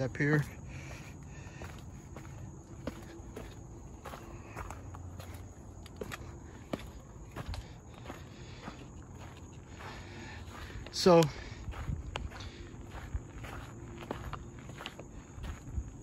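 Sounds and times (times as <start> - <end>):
footsteps on gravel: 0.0 - 16.0.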